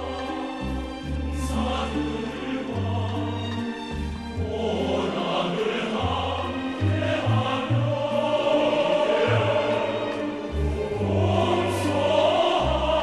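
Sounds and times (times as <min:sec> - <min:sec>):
choir singing: 0:00.0 - 0:13.0.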